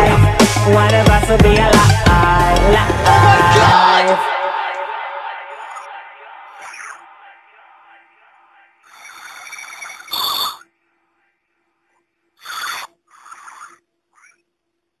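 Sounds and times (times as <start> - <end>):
music: 0.0 - 6.4.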